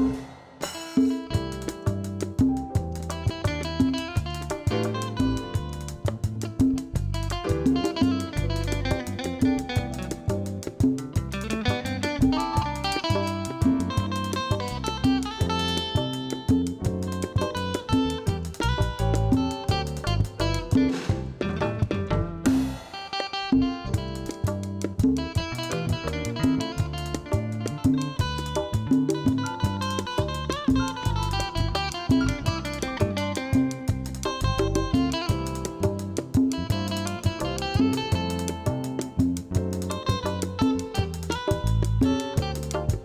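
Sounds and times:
acoustic guitar melody: 0.0s - 43.0s
band with bass and percussion: 0.0s - 43.0s.

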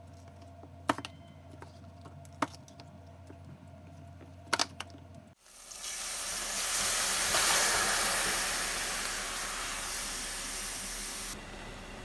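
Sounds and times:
meat sizzling in a frying pan: 5.4s - 11.4s.

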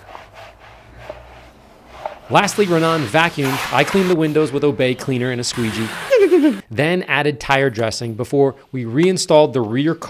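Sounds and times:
towel wiping rubber mat: 0.0s - 6.6s.

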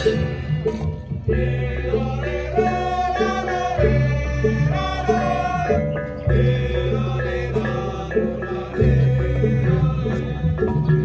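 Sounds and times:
traditional music with chant-like notes: 0.0s - 11.0s.

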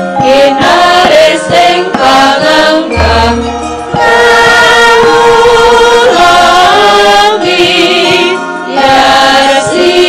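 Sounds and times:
gamelan music: 0.0s - 10.0s
female singers singing together: 0.2s - 10.0s.

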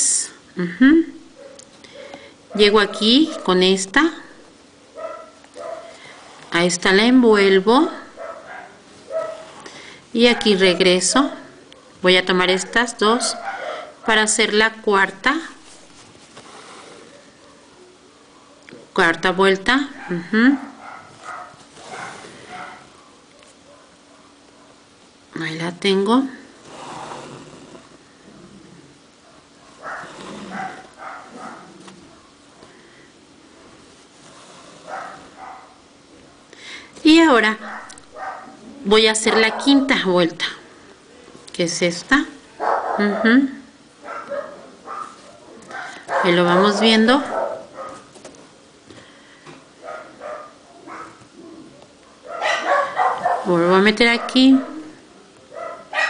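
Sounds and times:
dog barking: 1.4s - 3.6s, 5.0s - 6.0s, 8.2s - 9.6s, 12.7s - 14.3s, 17.0s - 18.8s, 19.9s - 24.9s, 29.2s - 32.7s, 34.8s - 35.9s, 37.6s - 38.6s, 39.2s - 40.0s, 42.6s - 43.4s, 44.0s - 48.1s, 49.8s - 56.0s.

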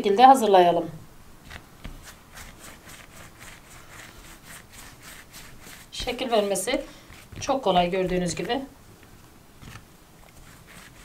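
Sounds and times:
hands rolling dough on tablecloth: 1.4s - 11.0s.

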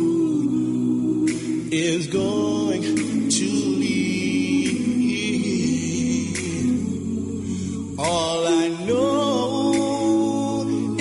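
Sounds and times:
lead voice singing with vibrato: 0.0s - 11.0s
vocal group singing harmonies: 0.0s - 11.0s.

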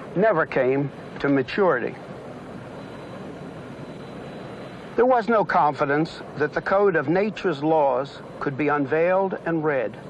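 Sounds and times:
vehicle cabin rumble and hiss: 0.0s - 10.0s.

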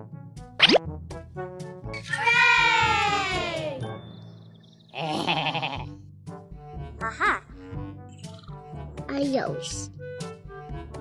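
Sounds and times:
background music: 0.0s - 11.0s
loud quavering animal cry: 4.9s - 5.9s.

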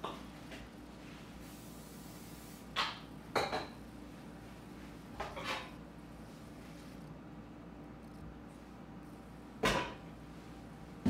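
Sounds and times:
aerosol cooking spray hiss: 1.0s - 3.0s
kitchenware clinking: 2.8s - 3.8s.

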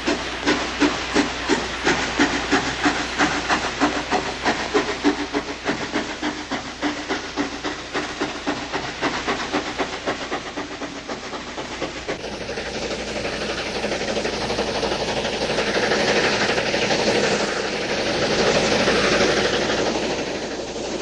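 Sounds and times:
steam locomotive chuffing: 0.0s - 21.0s.

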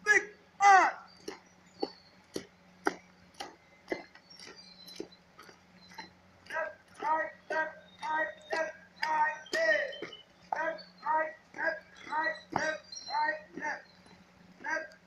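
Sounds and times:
short shouted calls: 0.0s - 1.4s, 6.5s - 15.0s
marching footsteps on asphalt: 0.0s - 15.0s.

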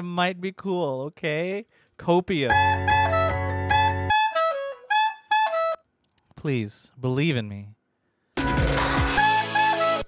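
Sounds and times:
clarinet melody: 2.5s - 6.0s, 9.1s - 10.0s.

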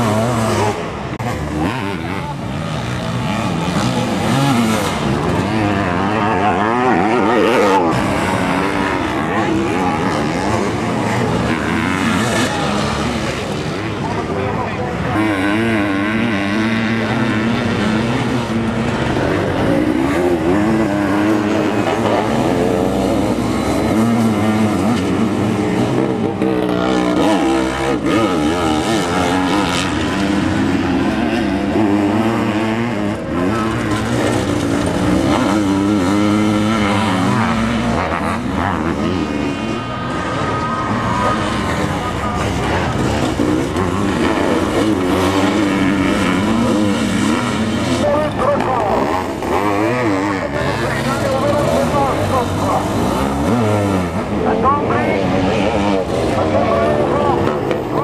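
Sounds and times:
racing engines revving: 0.0s - 58.0s.

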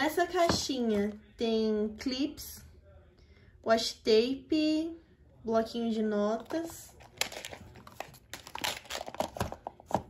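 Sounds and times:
rummaging through plastic items: 6.4s - 10.0s.

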